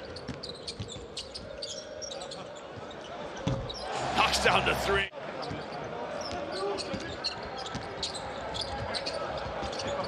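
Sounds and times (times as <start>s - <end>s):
shoe squeaks on court: 0.0s - 3.8s, 5.4s - 10.0s.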